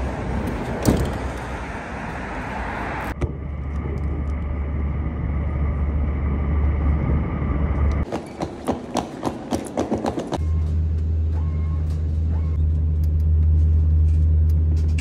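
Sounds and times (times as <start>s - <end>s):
vehicle rumble from inside: 0.0s - 8.1s, 10.4s - 15.0s
outdoor traffic noise: 0.0s - 15.0s.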